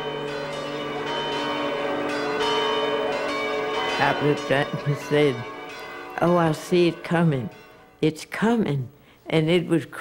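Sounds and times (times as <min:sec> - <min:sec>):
large bell ringing: 0:00.0 - 0:08.8.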